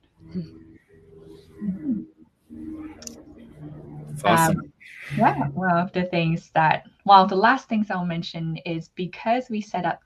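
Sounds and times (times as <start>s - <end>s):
soft voices: 0.3s - 2.0s, 2.6s - 10.0s.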